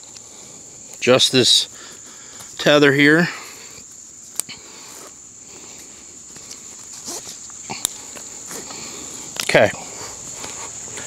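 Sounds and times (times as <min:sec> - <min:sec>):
crickets trilling: 0:00.0 - 0:11.0
rope and harness clicks and rustles: 0:05.8 - 0:11.0.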